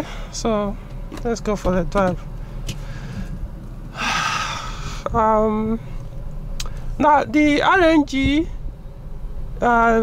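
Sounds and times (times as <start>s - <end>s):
car engine hum: 0.0s - 10.0s
person sighing: 3.9s - 5.1s.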